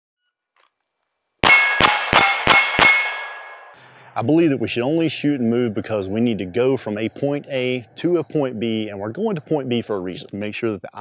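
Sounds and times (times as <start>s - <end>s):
pistol shots: 1.4s - 3.5s
metallic ring of steel targets: 1.4s - 3.8s.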